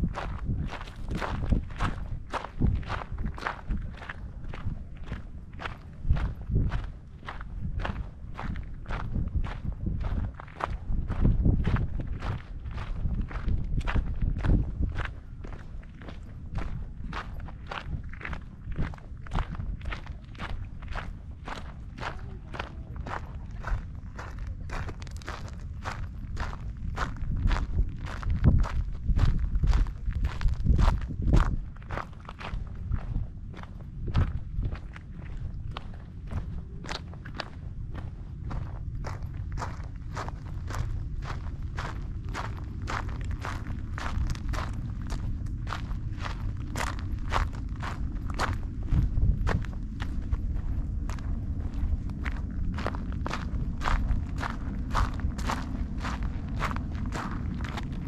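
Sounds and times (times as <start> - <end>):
footsteps on a trail: 0.0 - 58.0
low rumble: 0.0 - 58.0.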